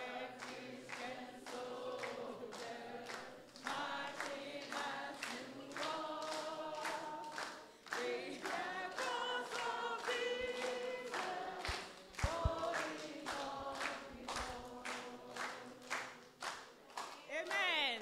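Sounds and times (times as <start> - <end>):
children and woman singing: 0.0 - 16.2
short low thumps: 12.2 - 12.7.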